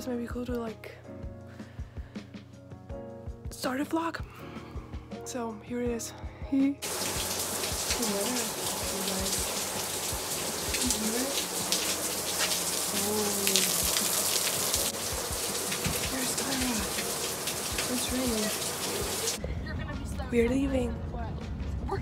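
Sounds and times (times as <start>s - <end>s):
steady rain falling: 6.8s - 19.4s
drops ticking on concrete: 11.7s - 18.4s.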